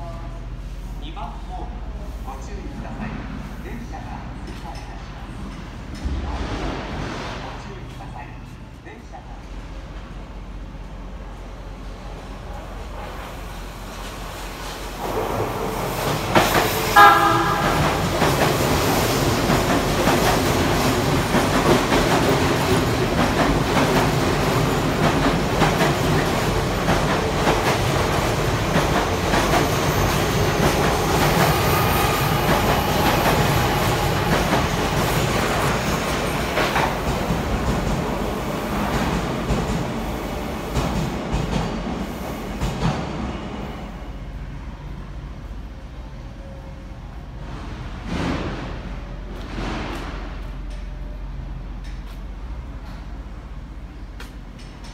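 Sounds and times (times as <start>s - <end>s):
train wheels rumbling on rail: 0.0s - 54.9s
rail joint clicks: 4.0s - 6.9s, 48.1s - 54.9s
train horn blast: 16.9s - 18.1s.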